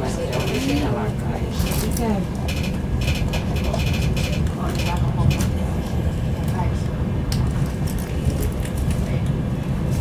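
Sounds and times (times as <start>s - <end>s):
faint conversation: 0.0s - 9.5s
train rumbling from inside: 0.0s - 10.0s.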